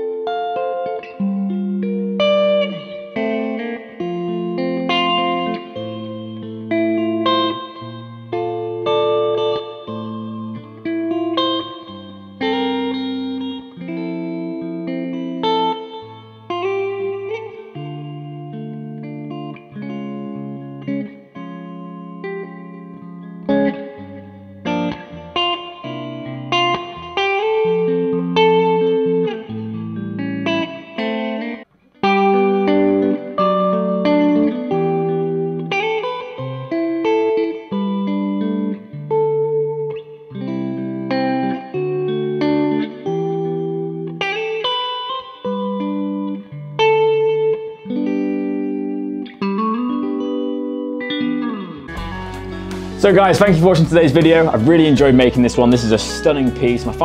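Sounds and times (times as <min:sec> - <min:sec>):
electric guitar chords and notes: 0:00.0 - 0:57.0.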